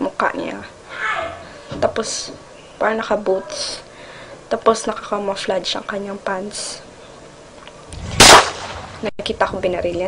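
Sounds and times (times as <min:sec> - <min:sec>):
loud gunshot with echo: 0:08.0 - 0:09.0.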